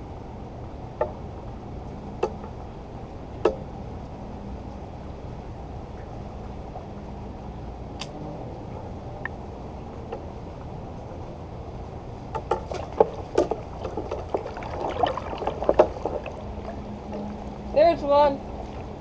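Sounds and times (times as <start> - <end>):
low rumble of open water: 0.0 - 19.0.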